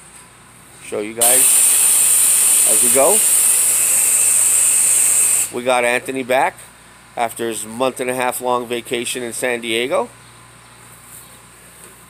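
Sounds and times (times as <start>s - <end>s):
spray wand hissing: 1.2s - 5.5s.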